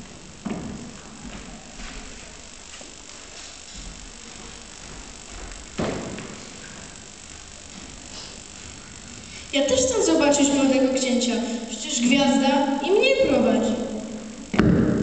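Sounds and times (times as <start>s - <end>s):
sharp thump: 14.5s - 15.0s.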